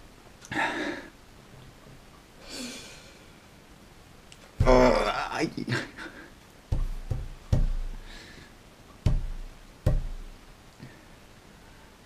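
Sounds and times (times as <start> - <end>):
fists pounding on wooden table: 4.6 - 5.1, 6.7 - 8.1, 9.0 - 10.4.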